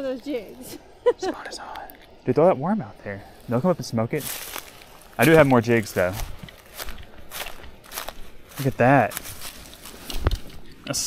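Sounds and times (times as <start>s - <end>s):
footsteps on leaves and gravel: 3.3s - 10.7s.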